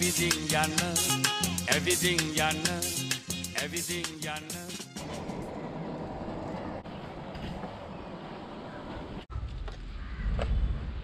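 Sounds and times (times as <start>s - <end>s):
bicycle tyres rolling on concrete: 5.0s - 10.0s.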